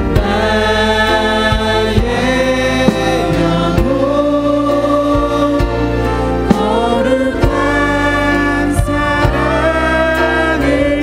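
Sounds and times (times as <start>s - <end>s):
congregation singing worship song: 0.0s - 11.0s
musical accompaniment: 0.0s - 11.0s.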